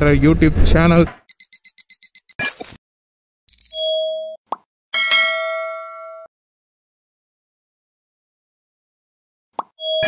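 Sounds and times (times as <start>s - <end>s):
bell ding: 5.0s - 6.3s.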